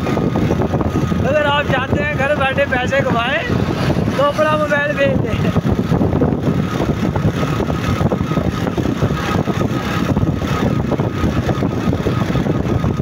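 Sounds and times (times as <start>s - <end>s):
road and wind noise: 0.0s - 13.0s
vehicle engine running: 0.0s - 13.0s.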